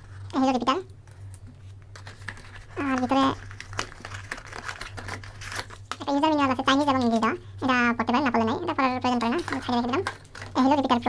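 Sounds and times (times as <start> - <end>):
person speaking: 0.3 - 0.9, 2.7 - 3.4, 5.9 - 11.0
cardboard and paper rustling: 1.1 - 6.0, 9.1 - 10.8.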